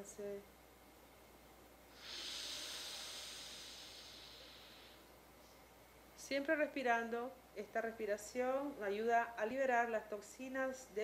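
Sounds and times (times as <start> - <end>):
breath through nostril: 1.9 - 5.6.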